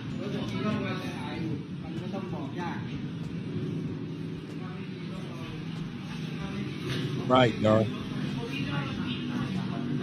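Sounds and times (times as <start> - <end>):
faint indistinct voices: 0.0 - 10.0
low background rumble: 0.0 - 10.0.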